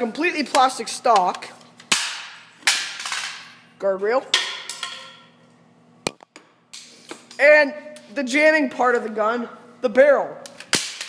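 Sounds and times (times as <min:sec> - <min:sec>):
sharp cracks with echo: 0:01.9 - 0:03.5, 0:10.6 - 0:11.0.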